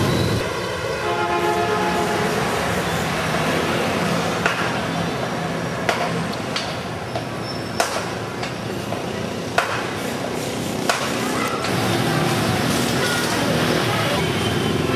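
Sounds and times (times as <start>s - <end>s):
street traffic: 0.0s - 14.9s
long vehicle horn: 1.0s - 2.4s.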